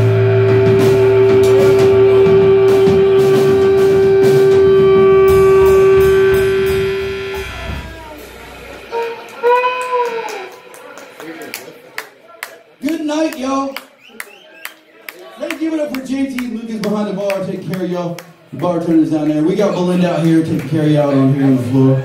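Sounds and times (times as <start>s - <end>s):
electric blues band playing: 0.0s - 13.9s
hand claps: 9.2s - 20.8s.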